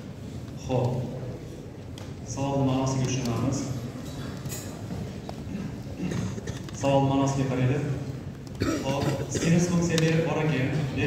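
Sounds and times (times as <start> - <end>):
man speaking: 0.6 - 1.4, 2.2 - 3.8, 6.0 - 8.2, 8.8 - 11.0.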